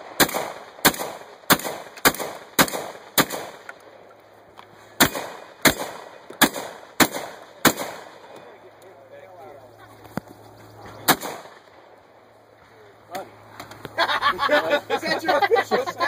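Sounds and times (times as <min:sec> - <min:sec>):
shotgun shots: 0:00.0 - 0:03.8, 0:05.0 - 0:08.4, 0:11.0 - 0:11.9.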